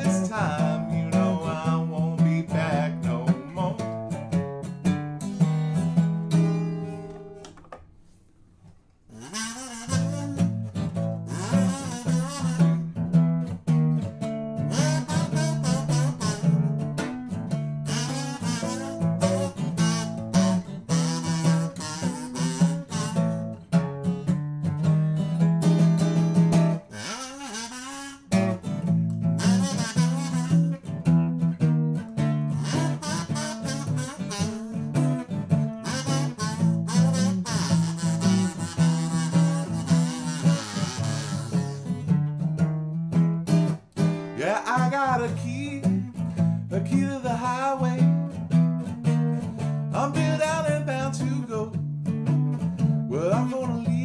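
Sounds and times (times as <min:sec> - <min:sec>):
harmonica playing: 0:00.0 - 0:04.1, 0:09.1 - 0:13.4, 0:14.6 - 0:23.9, 0:25.0 - 0:42.2, 0:44.2 - 0:46.2, 0:49.6 - 0:51.5
acoustic guitar strumming blues: 0:00.0 - 0:07.5, 0:09.1 - 0:54.0.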